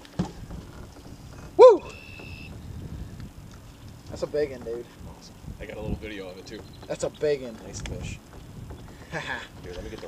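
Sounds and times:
person whooping: 0:01.6 - 0:02.0.

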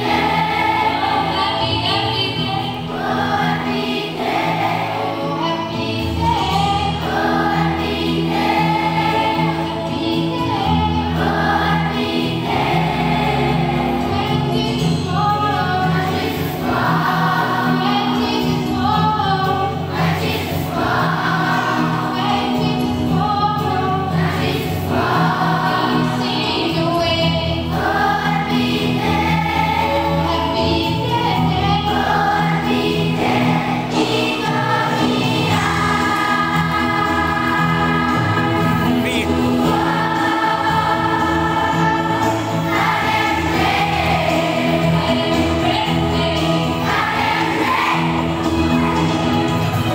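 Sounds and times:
children's choir singing: 0:00.0 - 0:49.9
instrumental accompaniment: 0:00.0 - 0:49.9.

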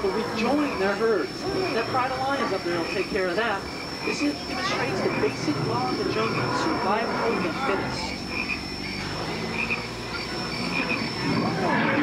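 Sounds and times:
frog-like croaking: 0:00.0 - 0:12.0
steady background hum: 0:00.0 - 0:12.0.

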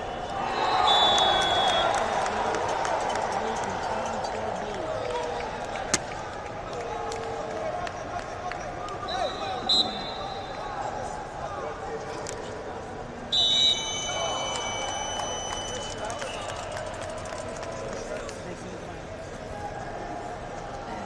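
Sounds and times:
crowd chatter: 0:00.0 - 0:21.0
referee's whistle blasts: 0:00.2 - 0:02.0, 0:09.1 - 0:10.6, 0:13.3 - 0:16.7.

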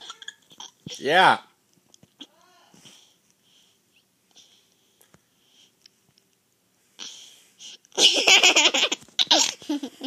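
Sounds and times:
baby laughing: 0:08.0 - 0:10.0.

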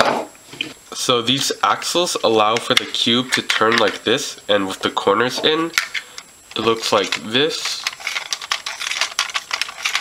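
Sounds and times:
plastic bricks clicking and rattling: 0:07.0 - 0:10.0.

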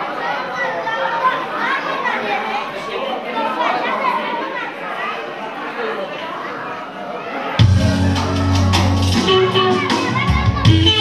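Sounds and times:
overlapping chatter: 0:00.0 - 0:11.0.

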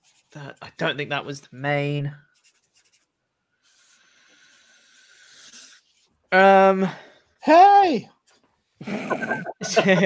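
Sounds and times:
writing scratching on paper: 0:02.3 - 0:06.1
person speaking: 0:08.9 - 0:10.0.

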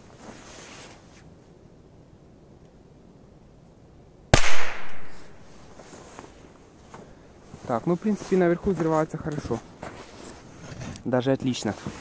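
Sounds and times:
firecracker bang: 0:04.4 - 0:05.4.

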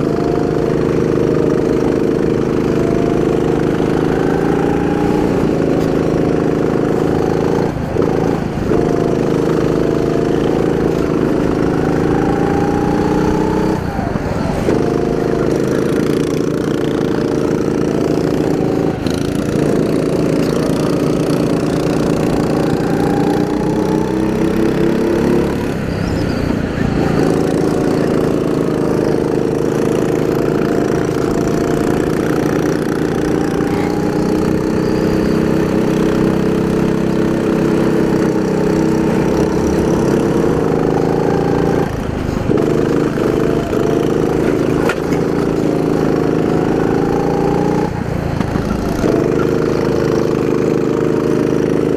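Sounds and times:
kart engine running hard: 0:00.0 - 0:51.9
wind and road noise: 0:00.0 - 0:51.9.

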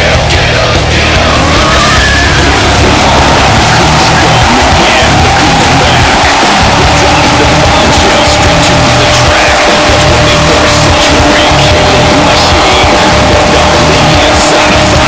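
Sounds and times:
loud music: 0:00.0 - 0:15.0
tyres spinning on pavement: 0:00.3 - 0:15.0
car engine at high revs: 0:00.8 - 0:15.0.

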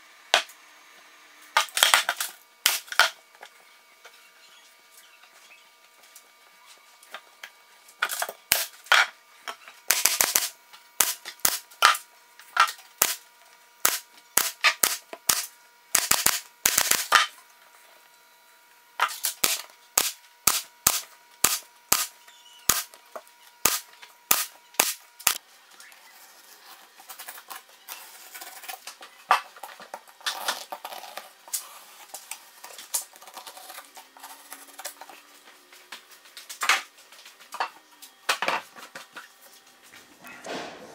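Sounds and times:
pneumatic stapler firing: 0:01.6 - 0:03.1, 0:09.9 - 0:12.0, 0:12.6 - 0:13.2, 0:13.8 - 0:17.3, 0:19.0 - 0:23.0, 0:23.6 - 0:25.4.

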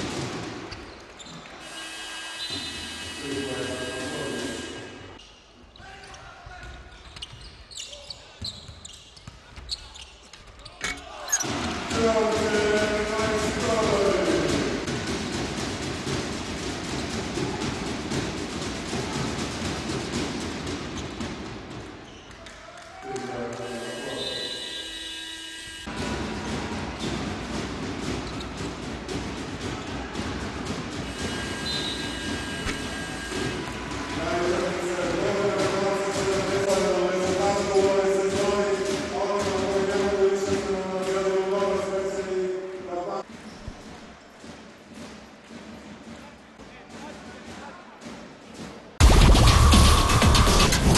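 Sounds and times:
ball bouncing on court: 0:06.5 - 0:18.3, 0:26.0 - 0:31.5
arena crowd noise: 0:09.3 - 0:24.9, 0:25.9 - 0:50.9.

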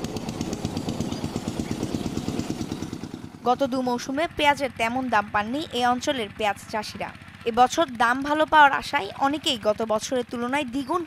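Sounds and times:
small engine running: 0:00.0 - 0:11.0.

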